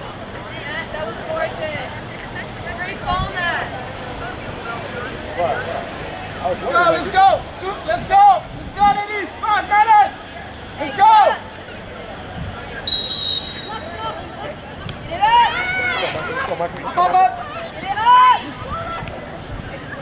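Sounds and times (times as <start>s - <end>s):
voices shouting: 6.4s - 11.7s, 12.8s - 20.0s
referee's whistle blast: 12.9s - 13.9s.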